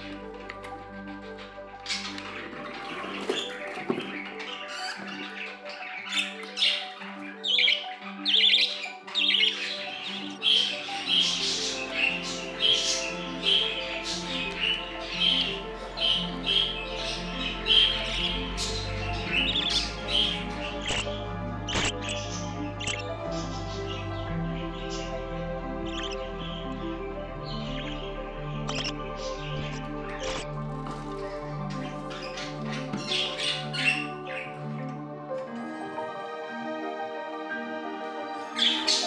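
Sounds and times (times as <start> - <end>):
bird chicks chirping: 0.0 - 36.1, 38.4 - 39.0
background music: 0.0 - 39.0.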